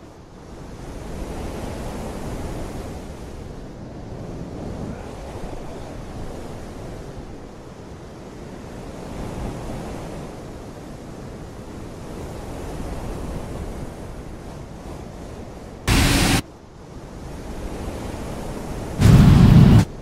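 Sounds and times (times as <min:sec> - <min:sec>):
wind rumbling on microphone: 0:00.4 - 0:20.0.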